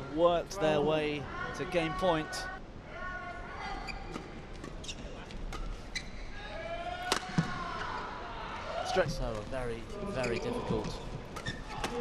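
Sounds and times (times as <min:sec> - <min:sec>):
shoes squeaking on court: 0:03.8 - 0:06.4, 0:10.1 - 0:12.0
rackets hitting shuttlecock: 0:07.0 - 0:07.6.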